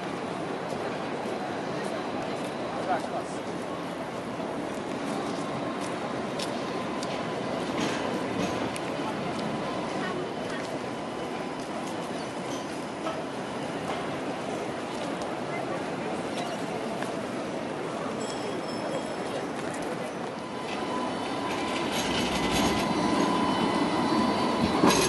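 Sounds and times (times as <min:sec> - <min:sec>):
city street noise: 0:00.0 - 0:25.0
tram rolling on track: 0:00.0 - 0:25.0.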